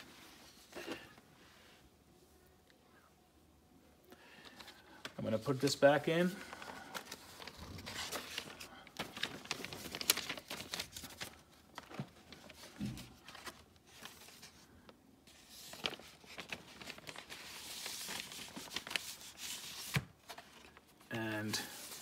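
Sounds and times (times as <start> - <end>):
paper and card rustling: 4.2 - 22.0.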